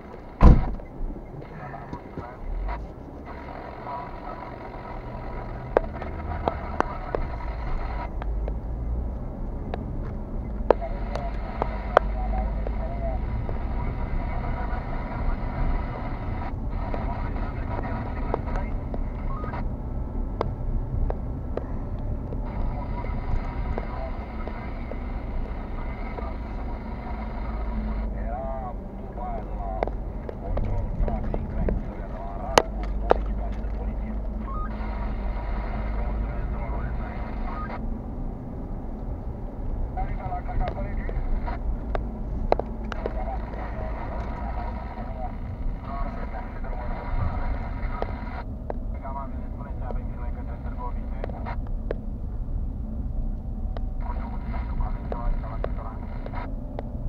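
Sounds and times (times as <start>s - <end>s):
engine and road rumble: 0.0s - 57.0s
sharp clicks: 40.6s - 44.7s.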